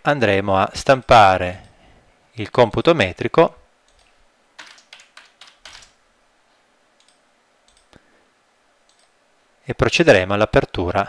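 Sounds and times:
keyboard typing: 0:03.9 - 0:06.0, 0:07.0 - 0:07.9, 0:08.9 - 0:09.1
faint mouse clicks: 0:07.0 - 0:08.0, 0:08.8 - 0:09.2.

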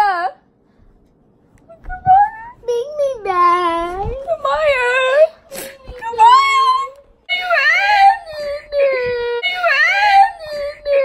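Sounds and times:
girl wailing and crying: 0:04.1 - 0:11.0.

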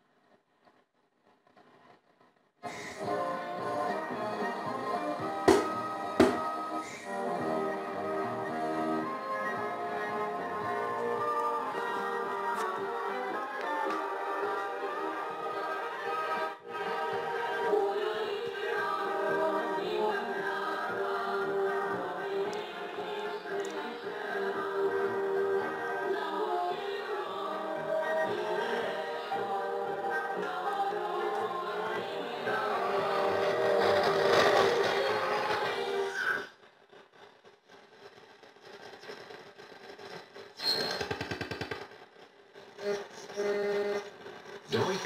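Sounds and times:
choir singing over radio speaker: 0:02.6 - 0:36.6
radio hiss and static: 0:42.8 - 0:45.0.

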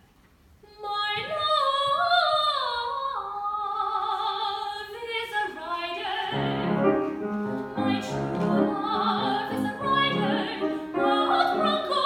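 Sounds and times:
woman singing classically: 0:00.6 - 0:12.0.

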